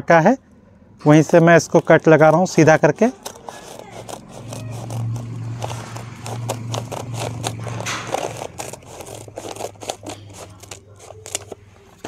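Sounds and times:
stiff plastic crackling: 1.0 - 12.0
scissors cutting plastic sack: 1.1 - 12.0.

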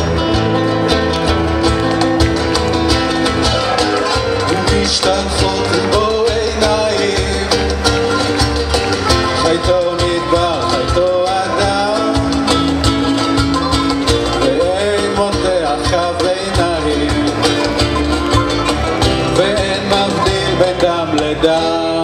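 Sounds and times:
bass: 0.0 - 22.0
percussion: 0.0 - 22.0
strummed acoustic guitars: 0.0 - 22.0.

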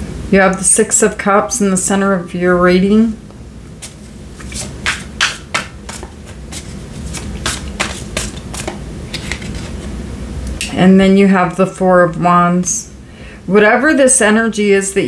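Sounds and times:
cards being shuffled: 3.8 - 9.9.

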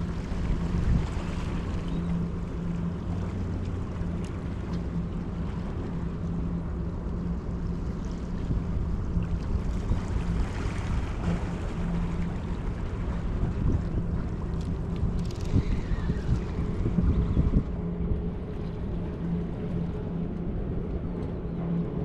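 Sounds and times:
wind on microphone: 0.0 - 2.2, 8.4 - 22.0
boat engine drone: 0.0 - 22.0.

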